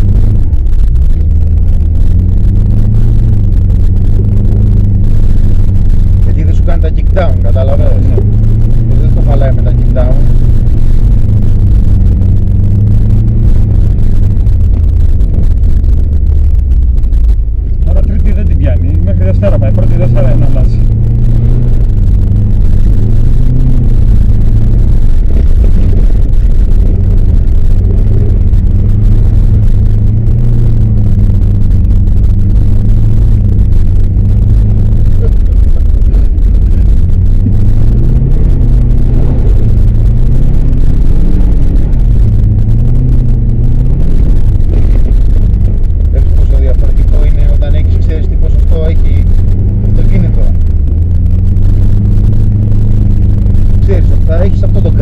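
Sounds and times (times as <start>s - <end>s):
car engine accelerating: 0.0s - 55.0s
road noise rumble: 0.0s - 55.0s.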